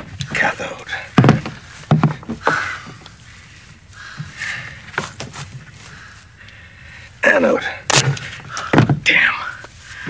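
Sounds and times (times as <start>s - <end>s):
wires rustling: 0.0s - 10.0s.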